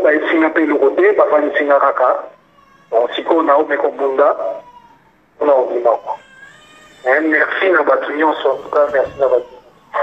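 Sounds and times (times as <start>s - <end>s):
person speaking: 7.0s - 10.0s.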